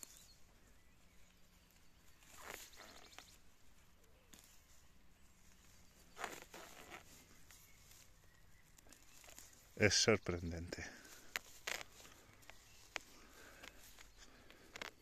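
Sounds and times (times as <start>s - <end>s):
hand rustling dry grass: 0.0s - 15.0s.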